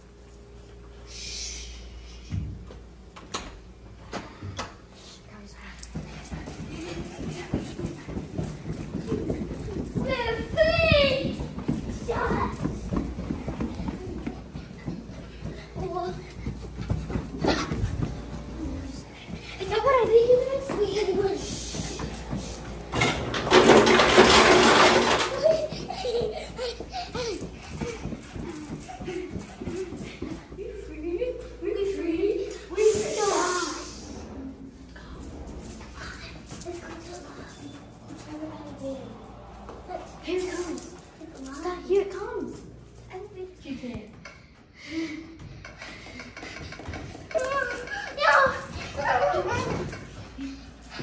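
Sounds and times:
children's voices: 0:05.4 - 0:22.6, 0:23.6 - 0:43.8, 0:44.8 - 0:51.0.

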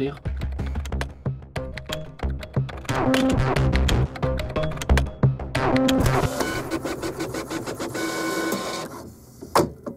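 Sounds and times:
theme music with a beat: 0:00.0 - 0:06.3.

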